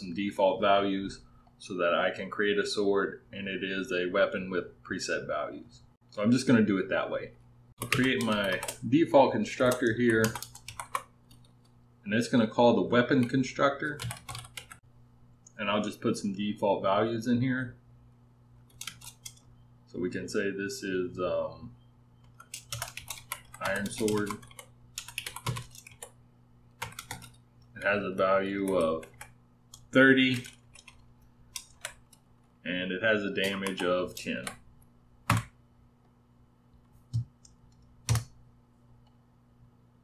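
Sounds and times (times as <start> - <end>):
computer keyboard keystrokes: 7.8 - 8.8, 9.6 - 11.7, 14.0 - 14.8, 18.7 - 19.5, 22.2 - 27.9, 28.6 - 32.2, 33.4 - 34.6, 35.3 - 35.6, 37.1 - 38.4.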